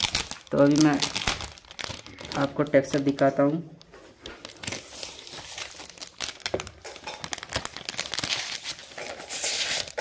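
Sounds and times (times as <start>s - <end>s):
paper crinkling and rustling: 0.0s - 10.0s.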